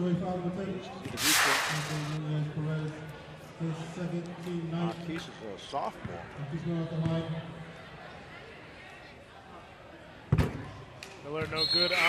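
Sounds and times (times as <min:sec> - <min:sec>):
transition swoosh: 0:01.2 - 0:02.2.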